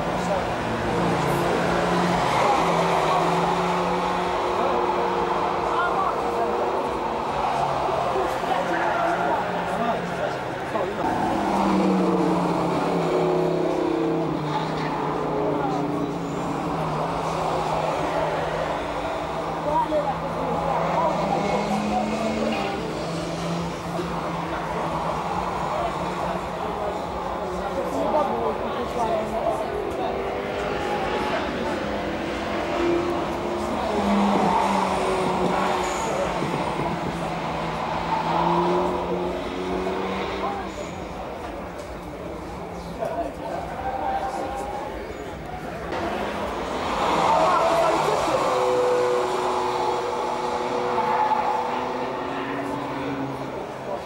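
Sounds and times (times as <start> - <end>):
race car engines droning: 0.0 - 54.0.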